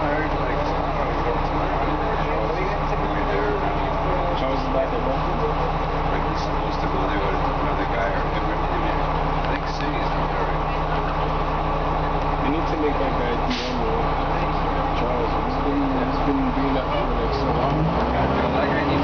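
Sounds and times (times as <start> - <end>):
bus diesel engine running: 0.0 - 19.0
passengers talking: 0.0 - 19.0.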